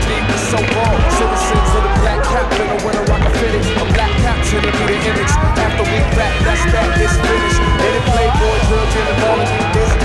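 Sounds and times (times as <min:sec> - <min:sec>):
music with heavy bass beat: 0:00.0 - 0:10.0
skateboard rolling on concrete: 0:00.1 - 0:08.1.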